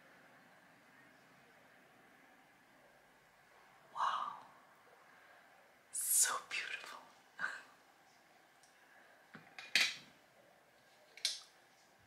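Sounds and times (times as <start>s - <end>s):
woman whispering: 3.9s - 4.6s, 6.0s - 7.8s.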